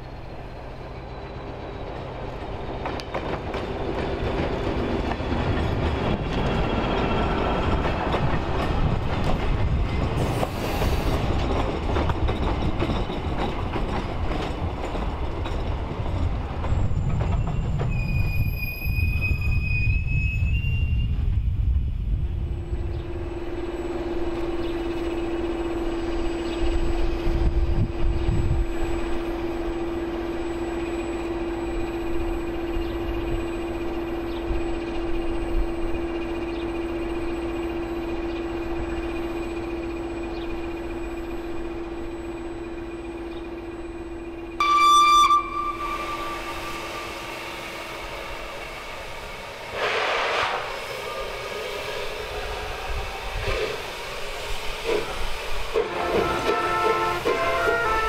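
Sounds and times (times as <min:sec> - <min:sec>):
train rumbling on rails: 0:00.0 - 0:58.0
high-pitched wheel squeals: 0:16.8 - 0:21.3, 0:28.1 - 0:49.5.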